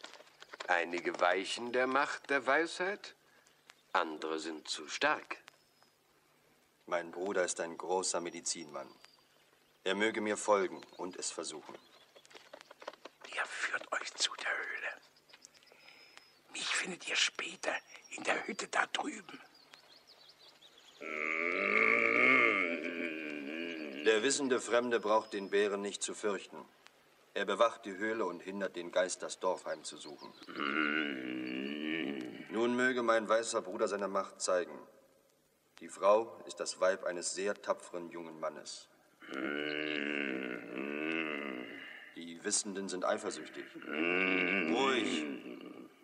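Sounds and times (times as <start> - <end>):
bear growling: 21.0 - 24.7, 30.2 - 32.8, 39.2 - 46.0.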